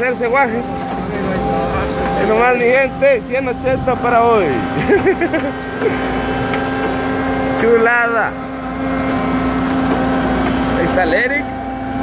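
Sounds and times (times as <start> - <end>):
asphalt paver running: 0.0 - 12.0
dump truck running: 0.0 - 12.0.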